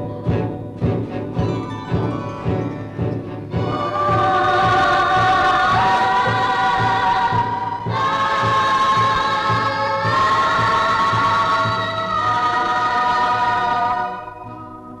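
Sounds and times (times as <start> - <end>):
low drumbeat: 0.0 - 12.4
choir singing sustained chords: 2.4 - 15.0.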